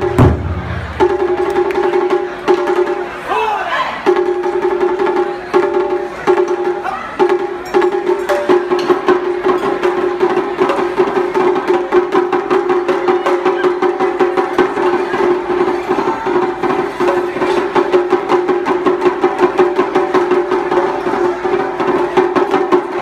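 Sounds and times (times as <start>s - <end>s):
large barrel drums struck: 0.0s - 3.0s.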